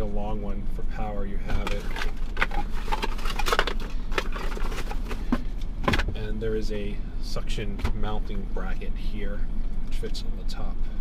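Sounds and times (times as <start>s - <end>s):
low hum: 0.0s - 11.0s
cardboard box rustling: 1.5s - 5.5s.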